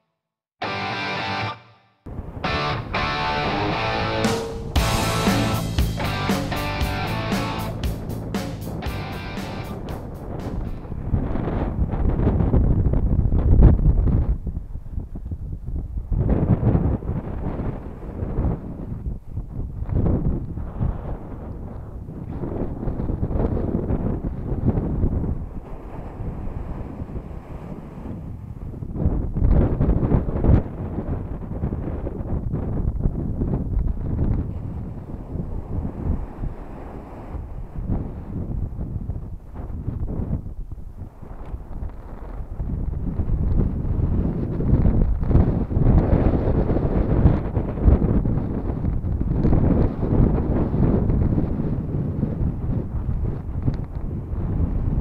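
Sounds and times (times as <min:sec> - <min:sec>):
wind buffeting microphone: 0:02.1 - 0:55.0
surf washing up on beach: 0:25.3 - 0:28.8, 0:34.4 - 0:38.8.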